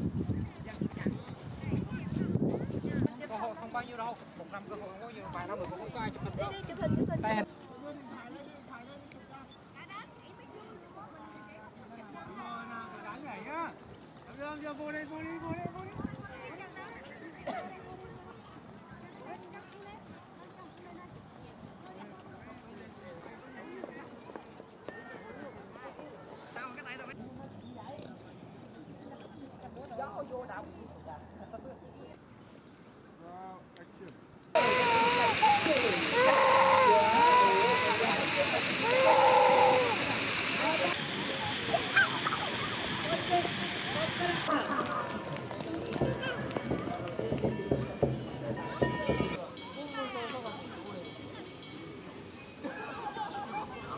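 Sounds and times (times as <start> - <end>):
steady high hiss: 34.6 - 44.5
people chattering: 34.6 - 53.9
people talking: 34.6 - 53.9.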